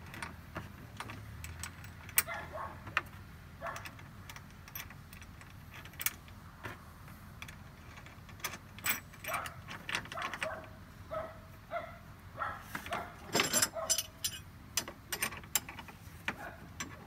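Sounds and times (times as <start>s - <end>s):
metal chain links clinking: 7.8s - 10.6s, 12.9s - 14.5s.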